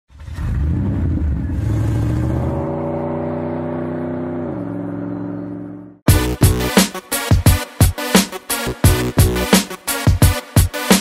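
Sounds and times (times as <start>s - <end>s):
car engine revving: 0.2s - 6.0s.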